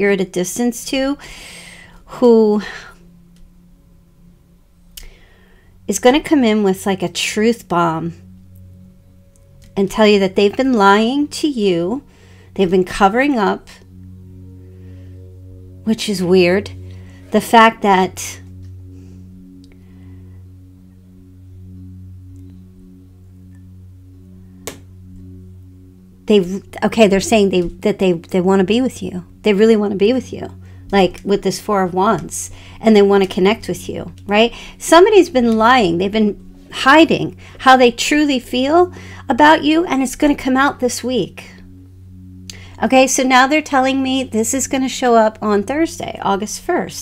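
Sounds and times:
ambient drone music: 0.0 - 47.0
steady low hum: 0.0 - 47.0.

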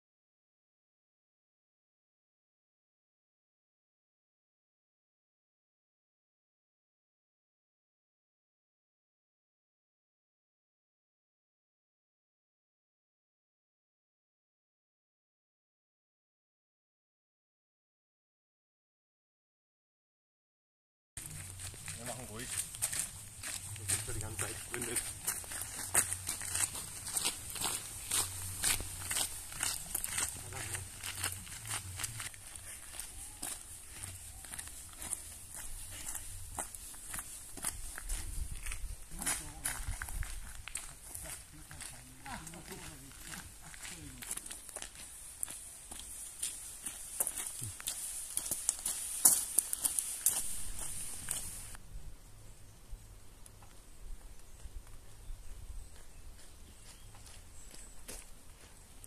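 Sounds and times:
footsteps on gravel: 21.2 - 51.8, 55.9 - 59.0.

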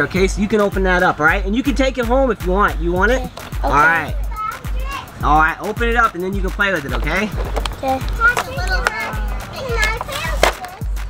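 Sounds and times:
music with pulsing low bass: 0.0 - 9.9
children's voices: 3.2 - 5.2, 7.5 - 11.0.

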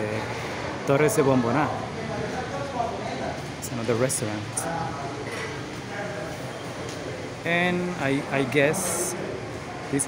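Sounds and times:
busy arcade background noise: 0.0 - 10.0
faint distant voices: 0.0 - 10.0.

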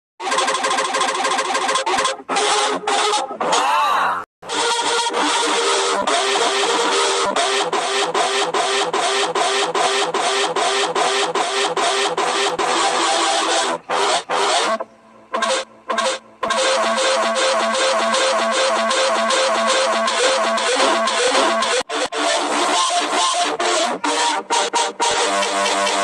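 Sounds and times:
loud music with fast beat: 4.5 - 14.8, 15.4 - 26.0.

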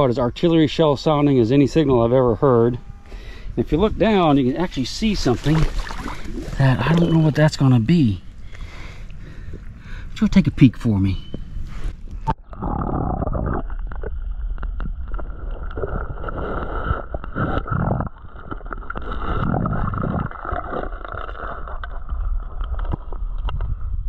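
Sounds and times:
muffled underwater river rushing: 3.4 - 10.0.

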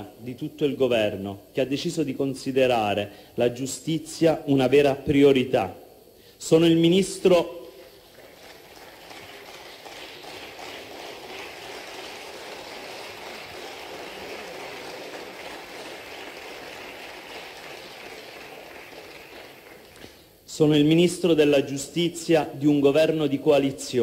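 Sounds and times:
applause in large chamber: 7.6 - 20.3.

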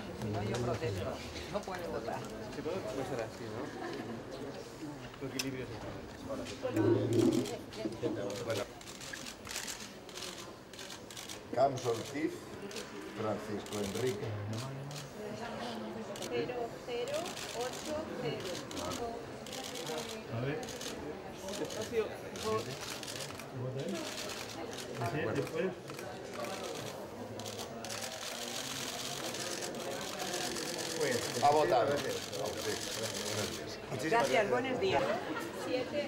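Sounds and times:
crowd murmur: 0.0 - 36.0
indistinct low voices: 6.0 - 8.8.

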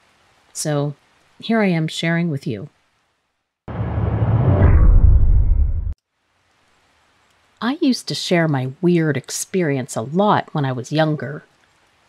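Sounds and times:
deep noisy transition effect: 3.7 - 6.0.

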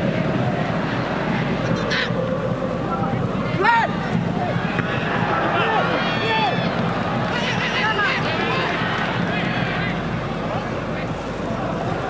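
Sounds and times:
stadium crowd noise: 0.0 - 12.0
voices: 0.0 - 12.0.

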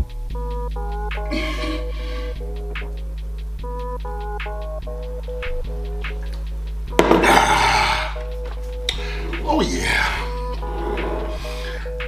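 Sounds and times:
hip-hop beat with melody: 0.0 - 12.0
loud breathy gasp: 1.4 - 2.4.

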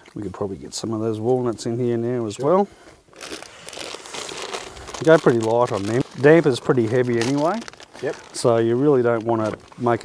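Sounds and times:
packet crinkling: 3.1 - 10.0.

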